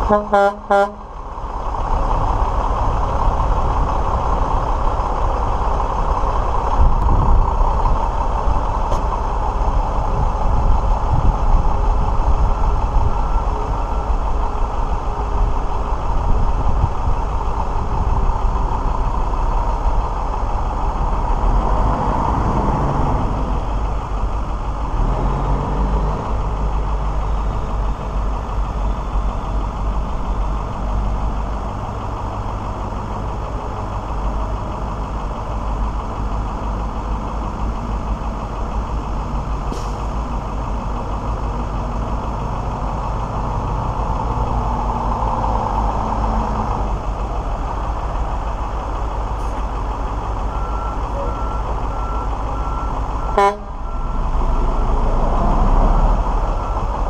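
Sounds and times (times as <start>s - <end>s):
diesel truck engine running: 0.0s - 57.0s
reversing alarm beeping: 50.4s - 55.0s.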